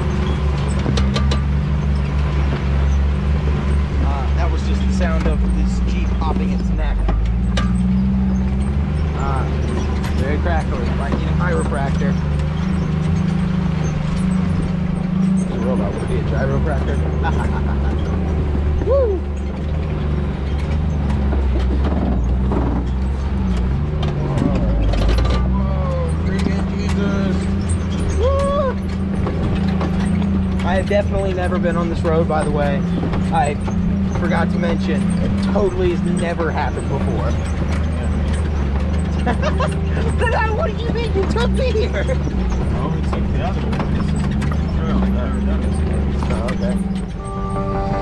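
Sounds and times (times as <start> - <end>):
off-road vehicle engine running: 0.0 - 48.0.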